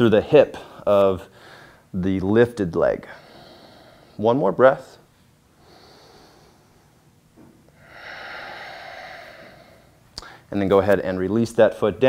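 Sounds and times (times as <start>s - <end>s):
man breathing deeply: 0.6s - 1.9s, 3.0s - 4.3s, 5.5s - 7.1s, 7.7s - 10.5s.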